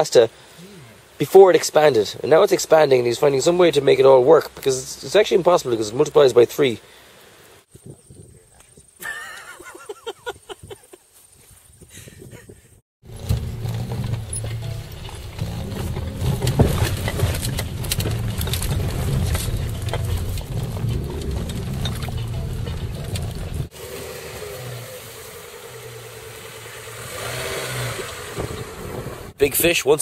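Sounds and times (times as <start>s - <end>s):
vehicle engine running: 13.0s - 29.4s.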